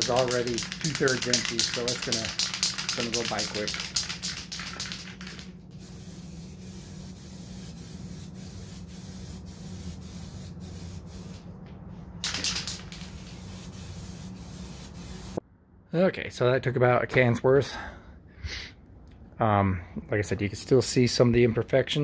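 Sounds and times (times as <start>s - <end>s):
aerosol can spraying: 0.0s - 11.4s, 12.2s - 15.4s
low steady hum: 0.0s - 22.0s.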